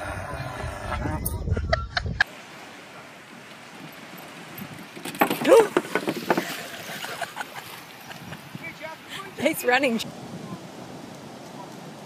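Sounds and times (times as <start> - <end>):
sharp knocks and clatter: 4.9 - 6.6.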